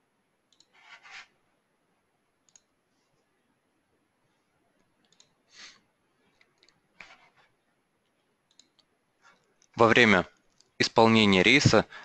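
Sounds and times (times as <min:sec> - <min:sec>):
small clicks: 0:00.5 - 0:00.8, 0:02.4 - 0:02.8, 0:04.8 - 0:05.4, 0:06.4 - 0:06.8, 0:08.0 - 0:09.8.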